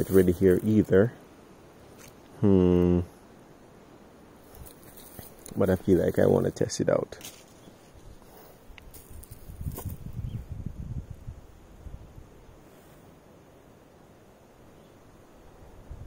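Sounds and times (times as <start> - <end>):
leaves and twigs rustling: 0.0 - 2.4, 4.0 - 10.6
faint outdoor hush: 0.0 - 16.0
low rumbling on microphone: 9.2 - 12.4.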